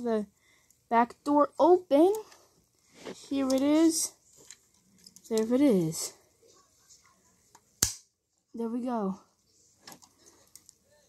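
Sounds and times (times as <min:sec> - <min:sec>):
toy part snapping into place: 0:07.8 - 0:08.0.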